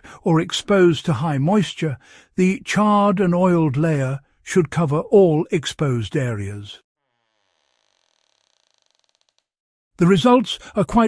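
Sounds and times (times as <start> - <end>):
faint creaking ticks: 7.6 - 9.5.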